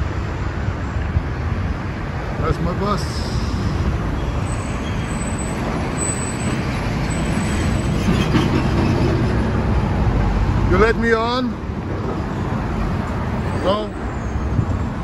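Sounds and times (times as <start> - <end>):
bus engine rumble: 0.0 - 15.0
road traffic: 0.0 - 15.0.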